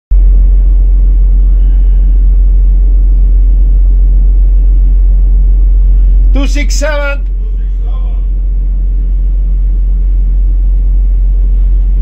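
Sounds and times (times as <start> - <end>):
deep rumble of ship: 0.1 - 12.0
ship engine hum: 0.1 - 12.0.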